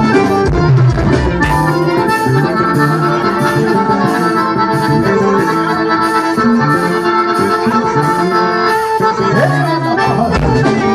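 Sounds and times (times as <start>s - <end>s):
accordion band music: 0.0s - 10.9s
bright percussion beat: 0.0s - 10.9s.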